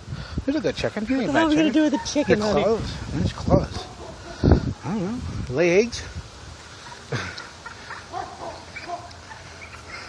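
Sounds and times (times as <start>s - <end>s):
chicken clucking: 6.6s - 10.0s.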